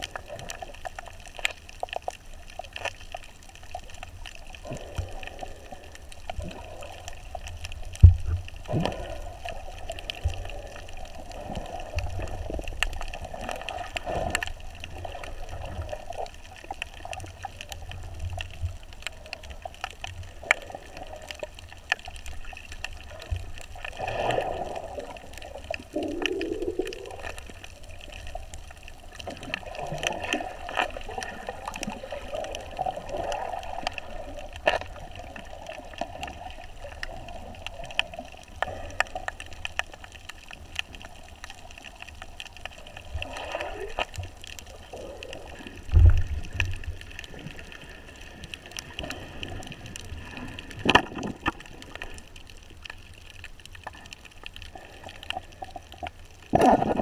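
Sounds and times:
sharp clicks and crackles: 0:00.0 - 0:57.0
muffled underwater gurgling: 0:03.3 - 0:52.2.

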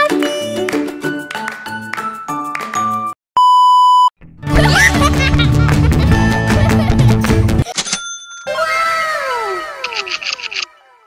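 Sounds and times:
background music: 0:00.0 - 0:03.2, 0:04.2 - 0:07.7.

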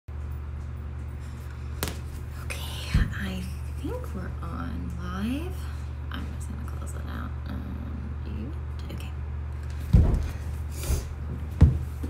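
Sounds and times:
steady low hum: 0:00.1 - 0:12.0.

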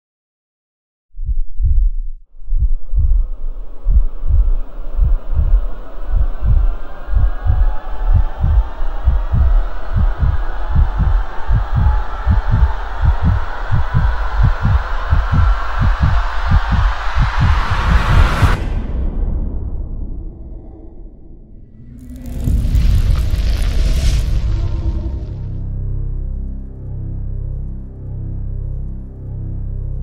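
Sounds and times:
deep heartbeat-like thumping: 0:01.2 - 0:25.4
rising swell of noise: 0:02.4 - 0:25.6.

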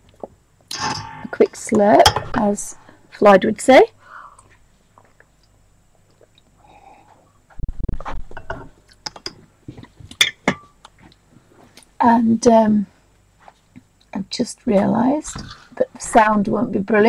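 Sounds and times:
clicks and knocks of objects handled: 0:08.0 - 0:11.9.

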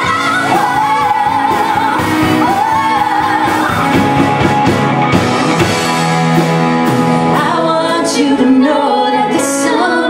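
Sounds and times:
women singing with vibrato: 0:00.0 - 0:04.2, 0:07.3 - 0:10.0
band with electric guitar: 0:00.0 - 0:10.0.

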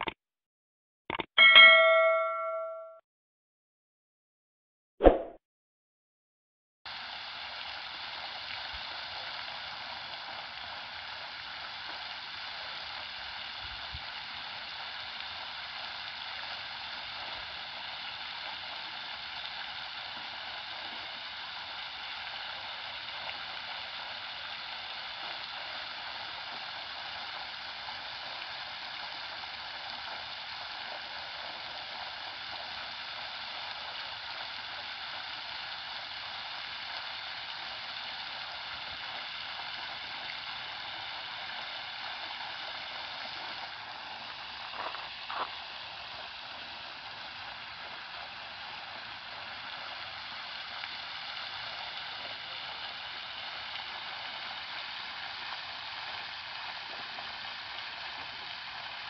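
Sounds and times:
fountain water splashing: 0:06.9 - 0:59.0.

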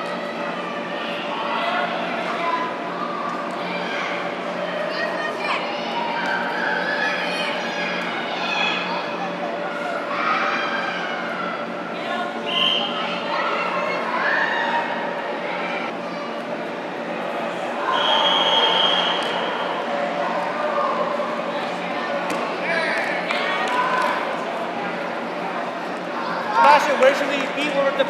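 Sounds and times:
voices shouting in a hall: 0:00.0 - 0:28.0.

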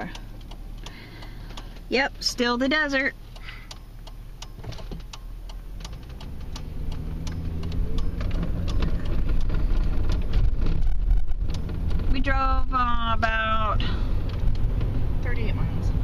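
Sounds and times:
car engine and road noise: 0:00.0 - 0:16.0.

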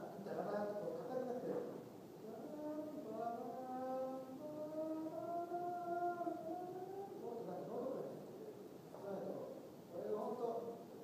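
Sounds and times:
person singing slow melody: 0:02.2 - 0:07.2.

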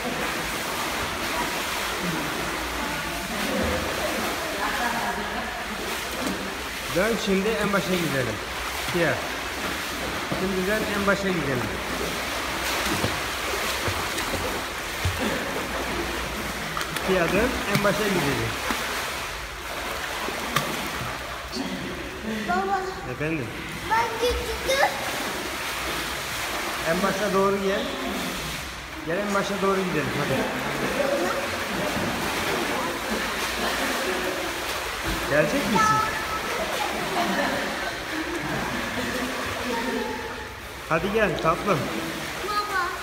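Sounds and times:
pool water splashing: 0:00.0 - 0:43.0.

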